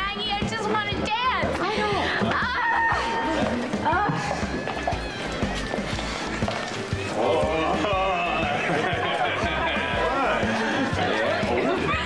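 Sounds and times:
crowd voices: 0.0s - 12.0s
music with steady beat: 0.0s - 12.0s.

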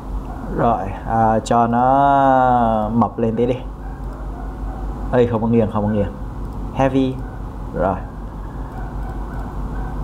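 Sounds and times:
constant hum: 0.0s - 10.0s.

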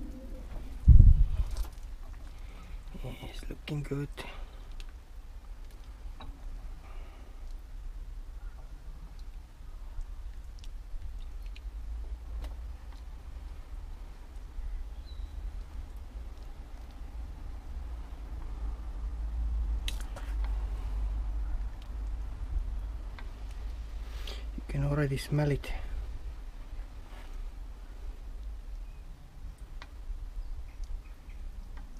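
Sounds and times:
wind rumble on microphone: 0.0s - 2.0s, 10.1s - 24.0s.

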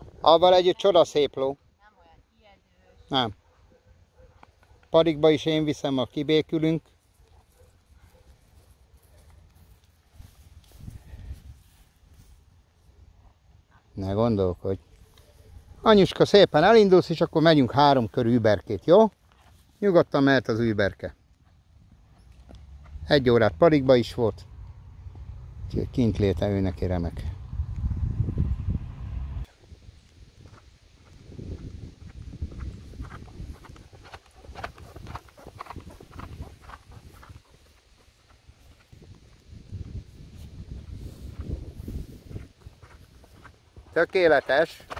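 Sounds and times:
horse hoofbeats on dirt: 21.4s - 23.1s, 30.4s - 40.0s, 40.9s - 44.9s.

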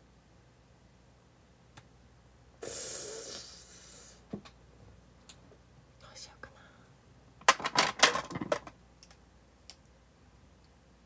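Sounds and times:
soft whisper: 6.0s - 7.0s.

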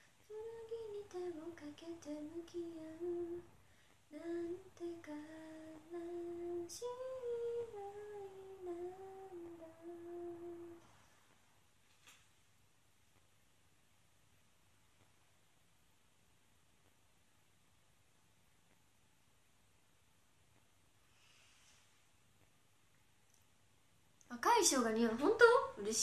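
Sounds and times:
young woman humming: 0.3s - 3.5s, 4.1s - 10.9s.

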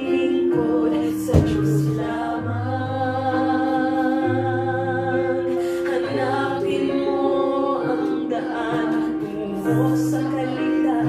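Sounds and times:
slow hymn with accompaniment: 0.0s - 11.0s.

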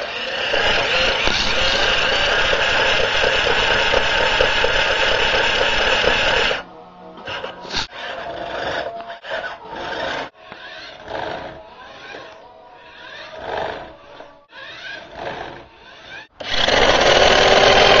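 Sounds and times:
toy car electric motor revving: 0.0s - 18.0s.

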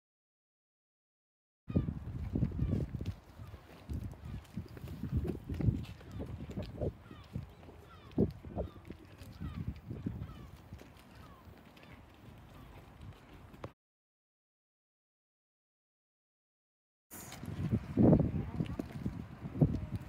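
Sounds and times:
birds chirping: 6.0s - 13.7s.

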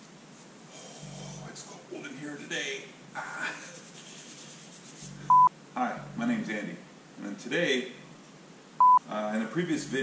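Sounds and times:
man speaking: 1.4s - 3.8s, 5.1s - 8.0s, 9.0s - 10.0s
short electronic beep: 5.3s - 5.5s.

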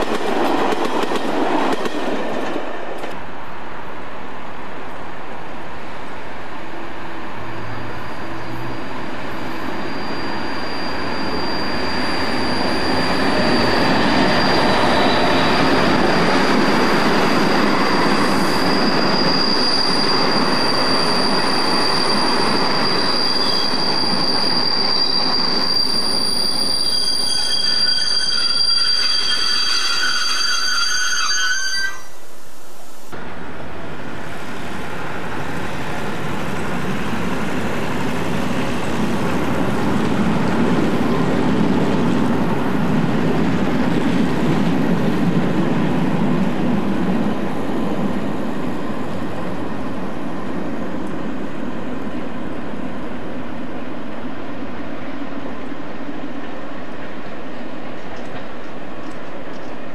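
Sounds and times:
train passing rumble: 0.0s - 26.4s, 32.0s - 59.9s
distant train rumble: 0.0s - 59.9s
high-pitched wheel squeal: 7.5s - 32.3s.

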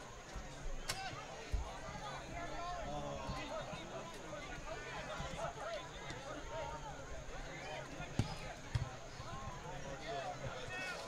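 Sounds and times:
players and spectators calling out: 0.0s - 11.0s.

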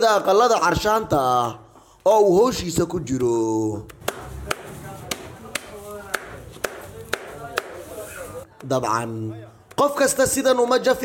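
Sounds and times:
stick beating dry grass: 3.9s - 7.9s.

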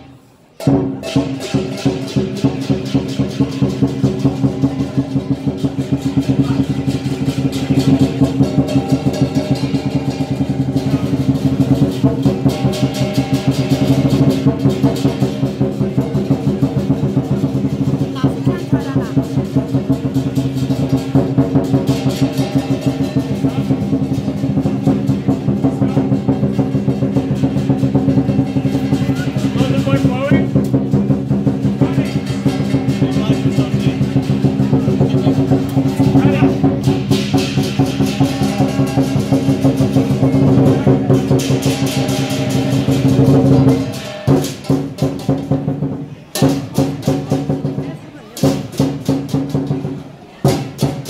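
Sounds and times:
gong: 0.6s - 18.4s, 19.2s - 29.6s, 30.5s - 45.5s
ringing cymbals: 0.6s - 47.6s
large drum beating fast: 0.6s - 51.0s.

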